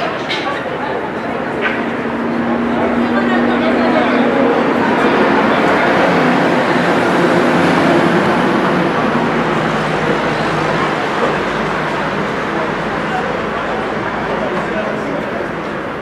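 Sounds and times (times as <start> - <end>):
stadium crowd din: 0.0 - 16.0.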